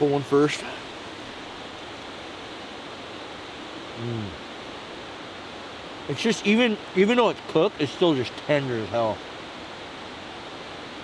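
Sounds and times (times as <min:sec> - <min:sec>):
river water rushing: 0:00.0 - 0:11.0.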